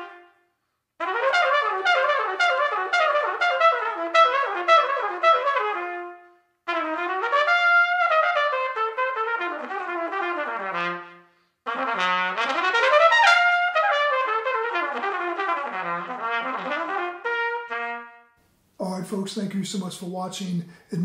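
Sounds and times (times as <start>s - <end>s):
solo jazz trumpet: 0.0s - 18.5s.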